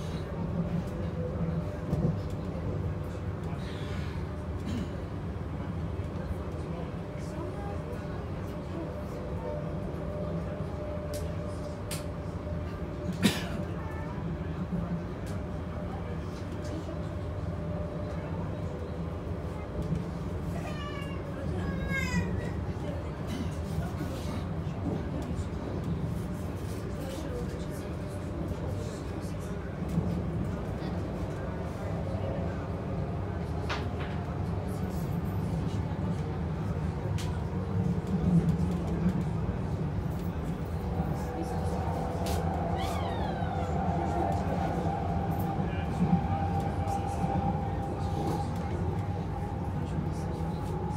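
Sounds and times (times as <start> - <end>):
train cabin rumble: 0.0 - 50.9.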